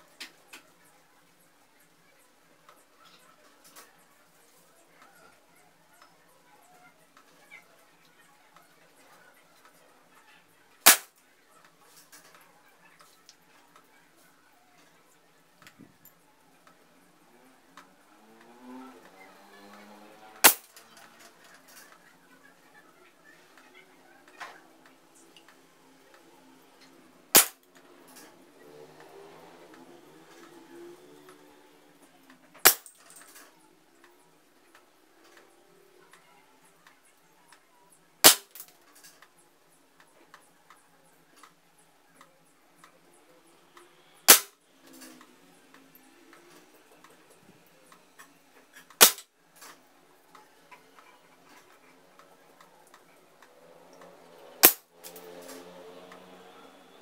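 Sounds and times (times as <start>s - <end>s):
air pistol shots: 10.9s - 11.1s, 20.4s - 20.7s, 27.4s - 27.6s, 32.6s - 33.0s, 38.2s - 38.6s, 44.3s - 44.5s, 49.0s - 49.2s, 54.6s - 54.8s.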